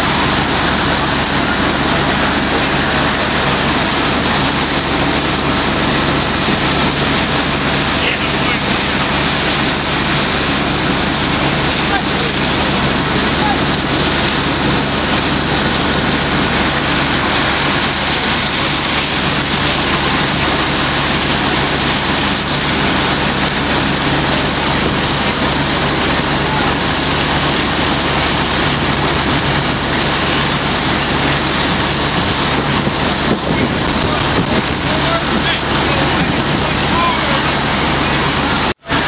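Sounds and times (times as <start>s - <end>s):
heavy engine running: 0.0s - 39.0s
loud rushing noise: 0.0s - 39.0s.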